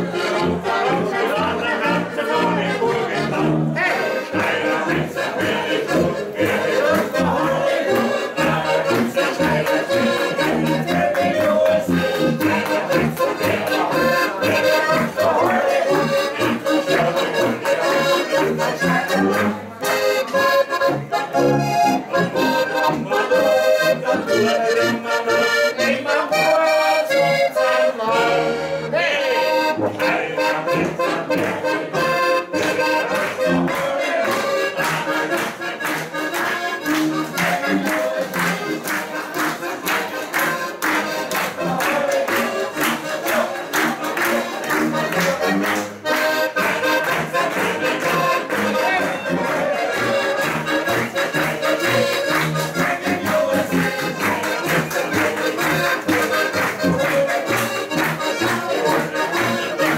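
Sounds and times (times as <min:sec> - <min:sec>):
accordions playing folk music: 0:00.0 - 0:59.9
tuba bass: 0:00.0 - 0:59.9
audience clapping along: 0:03.8 - 0:24.5, 0:29.9 - 0:59.9.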